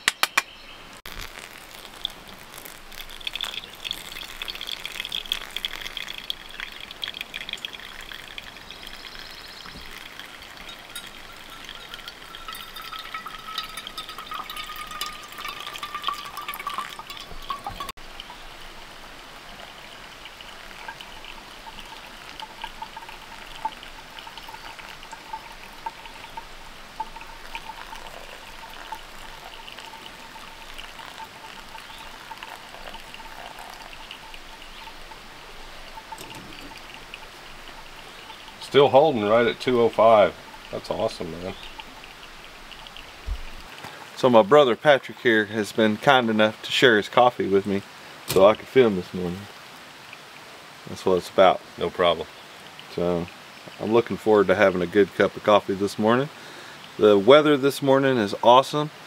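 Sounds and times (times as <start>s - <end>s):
hot water pouring onto coffee: 1.0s - 58.9s.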